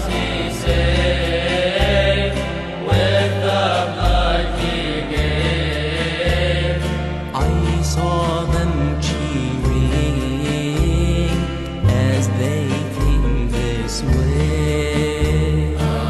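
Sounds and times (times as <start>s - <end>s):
chant-like singing: 0.0s - 11.0s, 12.2s - 16.0s
deep held bass notes: 0.0s - 16.0s.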